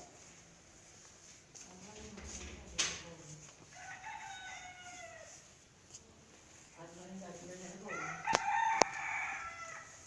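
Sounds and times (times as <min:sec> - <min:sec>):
rooster crowing: 0:03.7 - 0:05.5, 0:07.9 - 0:10.0.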